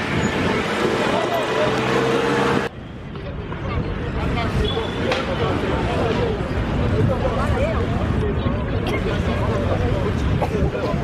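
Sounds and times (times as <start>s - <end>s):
loud street noise with voices: 0.0s - 11.0s
faint scattered voices: 2.7s - 11.0s.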